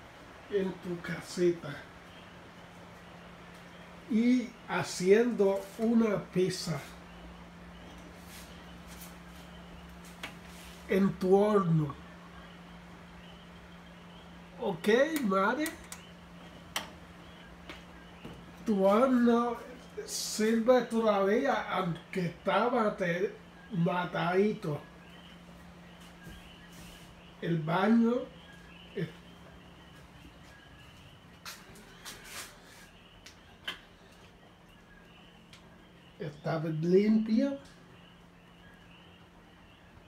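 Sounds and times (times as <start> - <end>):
low steady hum: 0.0 - 40.0
short rustle: 31.4 - 33.0.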